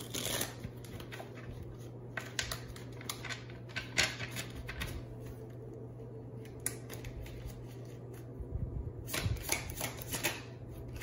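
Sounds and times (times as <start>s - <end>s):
cards being shuffled: 0.0s - 5.5s
steady low hum: 0.0s - 11.0s.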